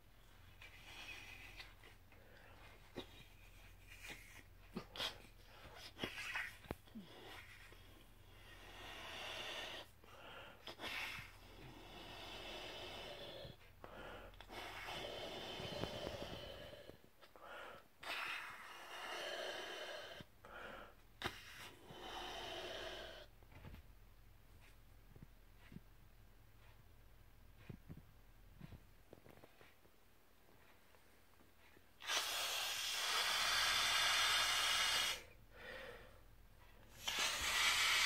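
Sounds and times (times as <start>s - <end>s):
breath blown into balloon: 32.0s - 36.1s, 36.9s - 38.0s.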